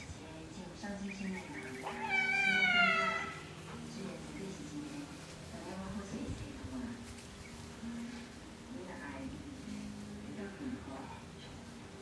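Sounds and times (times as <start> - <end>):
cat meowing: 1.8 - 3.4.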